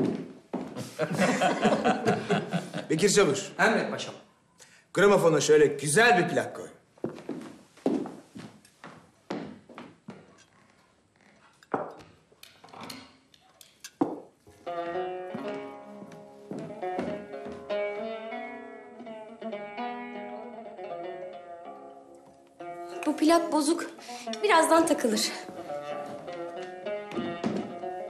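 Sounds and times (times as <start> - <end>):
plucked-string folk tune on record: 14.5 - 28.0.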